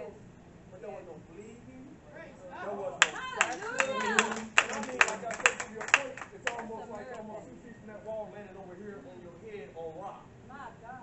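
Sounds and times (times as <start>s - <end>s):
hands clapping in rhythm: 3.0s - 6.8s.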